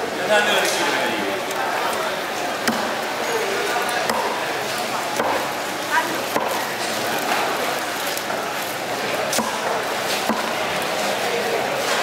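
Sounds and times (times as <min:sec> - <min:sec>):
market chatter: 0:00.0 - 0:12.0.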